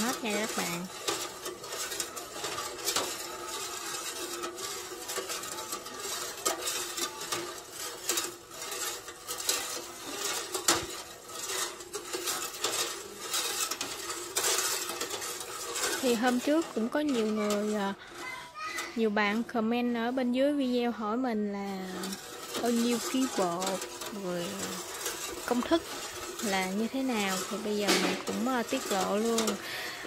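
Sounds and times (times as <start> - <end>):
metal ladle clinking in a pot: 0.1 - 18.9, 21.8 - 29.7.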